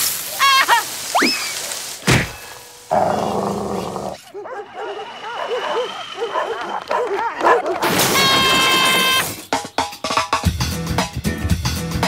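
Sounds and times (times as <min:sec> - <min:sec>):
thud: 0:02.0 - 0:02.4
cartoon dog barking and yapping: 0:04.2 - 0:08.9.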